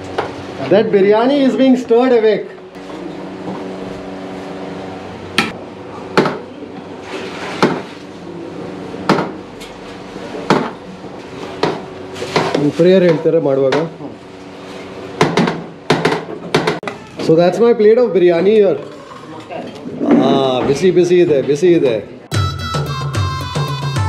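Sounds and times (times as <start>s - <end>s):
steady background hum: 0.0s - 22.3s.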